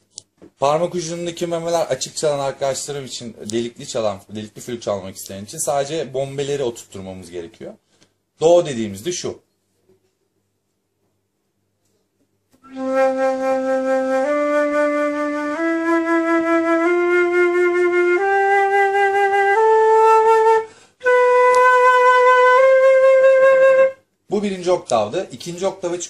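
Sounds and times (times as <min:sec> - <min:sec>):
flute playing a scale: 0:12.6 - 0:24.0.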